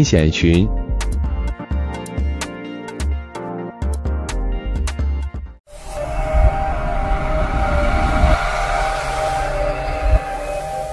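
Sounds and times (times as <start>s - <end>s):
low rumble: 5.7s - 10.9s
rushing noise: 5.7s - 10.9s
synthesized held tones: 5.7s - 10.9s.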